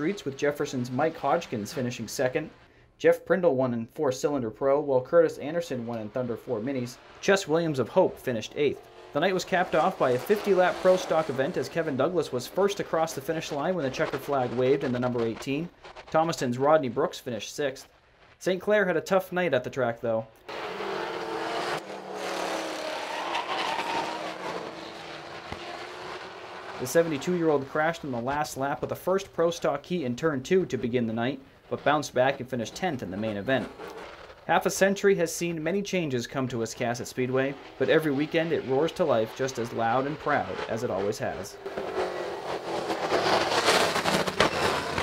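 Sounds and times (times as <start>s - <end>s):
race car engines passing: 0.0s - 2.7s, 5.1s - 16.5s, 20.4s - 45.0s.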